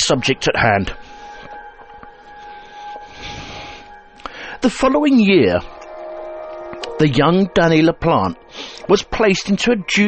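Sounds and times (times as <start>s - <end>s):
quiet ambient music: 0.0s - 10.0s.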